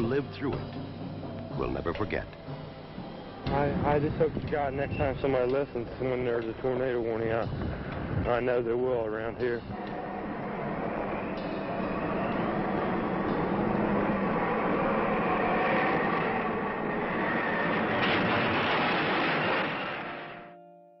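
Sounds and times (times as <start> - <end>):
storm wind roaring: 2.8 - 20.4.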